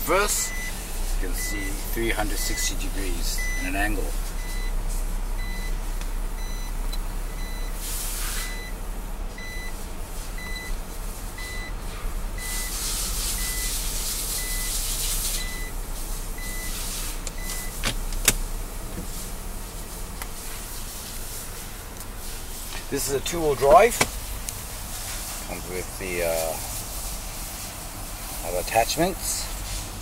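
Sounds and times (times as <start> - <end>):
engine idling hum: 0.0 - 30.0
reverse warning beeper: 0.2 - 4.8, 5.4 - 5.8, 6.4 - 8.8, 9.4 - 9.8, 10.4 - 11.8, 12.4 - 15.8, 16.4 - 17.8
hiss bursts: 7.7 - 8.6, 11.4 - 30.0.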